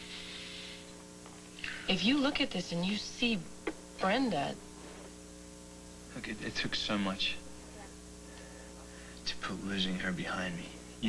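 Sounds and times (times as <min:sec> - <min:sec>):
low hum of held tones: 0:00.0 - 0:11.0
woman speaking: 0:01.7 - 0:04.6, 0:07.6 - 0:08.0.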